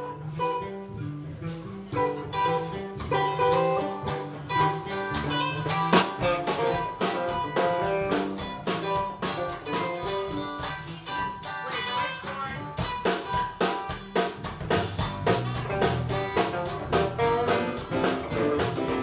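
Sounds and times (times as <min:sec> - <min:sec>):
drums: 0:00.0 - 0:19.0
guitar: 0:00.0 - 0:19.0
hand percussion: 0:00.0 - 0:19.0
live band playing: 0:00.0 - 0:19.0.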